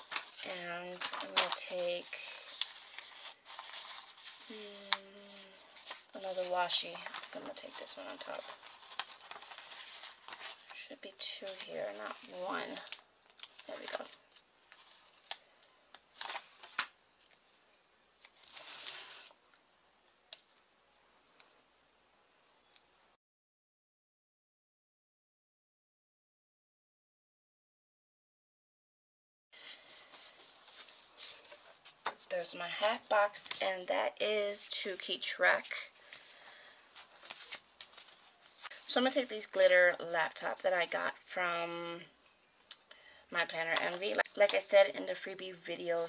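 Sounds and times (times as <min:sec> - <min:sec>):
sticker sheet crinkling: 0:00.0 - 0:16.9
paper rustle: 0:00.0 - 0:17.4, 0:18.2 - 0:19.4, 0:29.6 - 0:33.8, 0:35.7 - 0:40.6.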